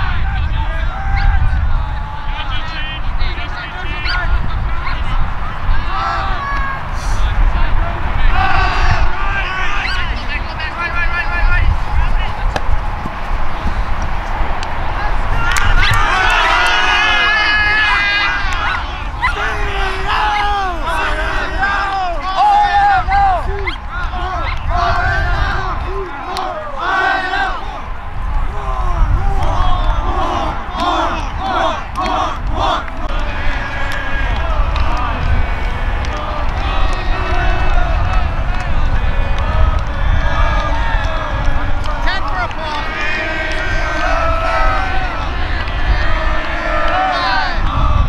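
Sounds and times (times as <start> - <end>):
group shouting and cheering: 0.0 - 48.0
voices calling out: 0.0 - 48.0
wind rumble on microphone: 0.0 - 48.0.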